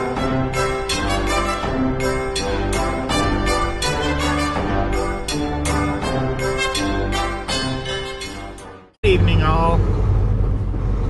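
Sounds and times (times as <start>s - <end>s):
road noise: 0.0s - 11.0s
man's voice: 9.0s - 9.8s
truck engine rumble in cab: 9.0s - 11.0s.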